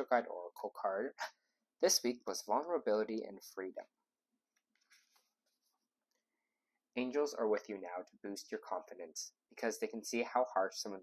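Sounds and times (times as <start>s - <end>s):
paper pages rustling: 4.8s - 5.9s.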